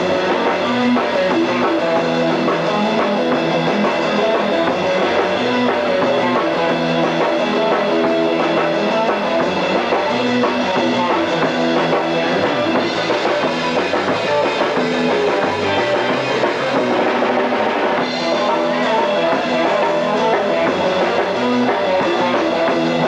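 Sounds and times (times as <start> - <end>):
bass guitar: 0.0 - 23.0
drum kit: 0.0 - 23.0
electric guitars: 0.0 - 23.0.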